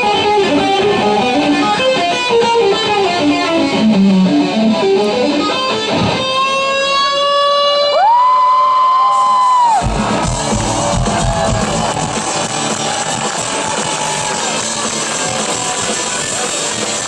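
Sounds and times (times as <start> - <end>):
band and crowd noise: 0.0 - 17.0
electric guitar solo: 0.0 - 17.0.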